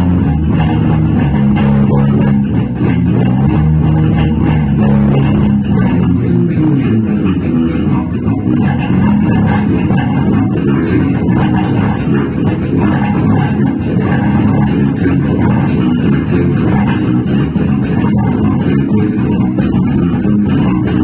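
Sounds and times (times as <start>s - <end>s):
electric bass guitar groove: 0.0s - 21.0s.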